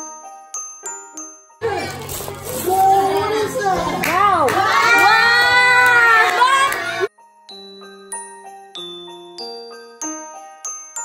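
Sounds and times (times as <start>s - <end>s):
children's excited voices: 2.6s - 7.1s
bell-like music notes: 7.1s - 11.0s.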